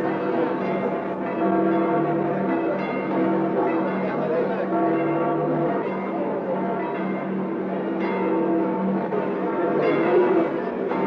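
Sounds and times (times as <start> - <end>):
church bells ringing: 0.0 - 11.0.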